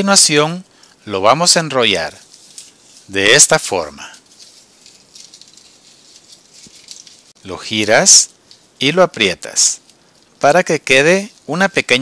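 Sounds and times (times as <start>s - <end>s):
paper crinkling and rustling: 2.0s - 8.9s.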